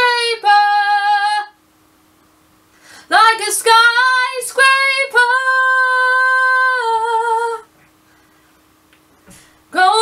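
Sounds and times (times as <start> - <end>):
woman singing unaccompanied: 0.0 - 1.6, 3.0 - 7.7, 9.7 - 10.0.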